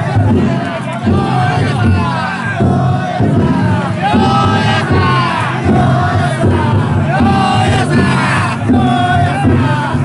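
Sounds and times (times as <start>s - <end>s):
crowd noise: 0.0s - 10.0s
group chanting shouted calls: 0.0s - 10.0s.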